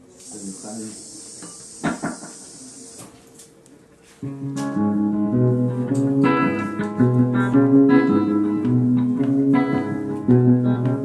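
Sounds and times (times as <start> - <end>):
guitar amplifier hiss: 0.0 - 3.6.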